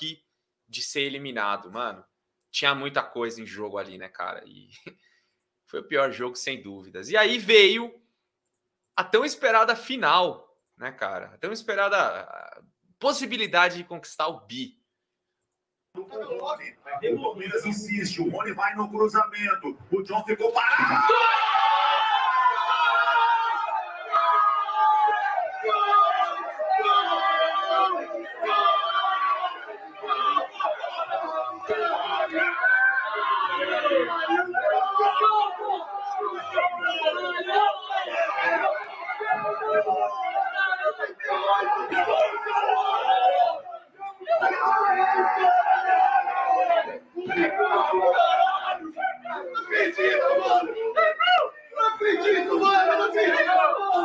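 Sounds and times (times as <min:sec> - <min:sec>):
men screaming and yelling: 0:16.0 - 0:54.0.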